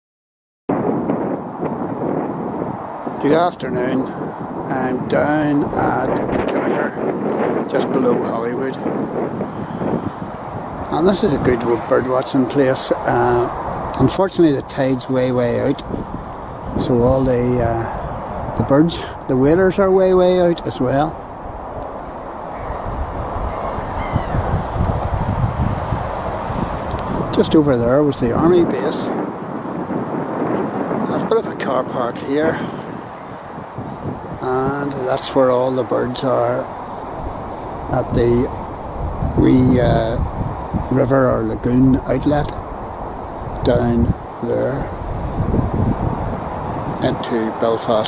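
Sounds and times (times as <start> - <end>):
wind buffeting microphone: 0.7 - 48.0
bird call: 22.2 - 24.8.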